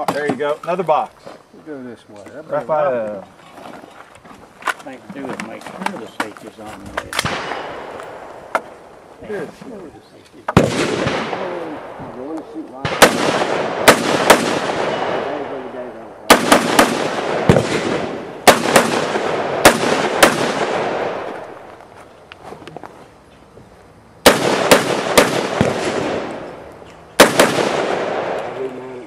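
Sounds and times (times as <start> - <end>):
rifle shots with long echo: 7.1 - 8.6, 10.6 - 21.7, 24.2 - 29.0.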